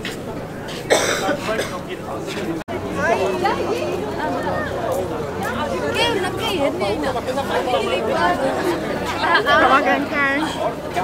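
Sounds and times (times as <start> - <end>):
people's voices: 0.0 - 11.0
person coughing: 0.9 - 1.8.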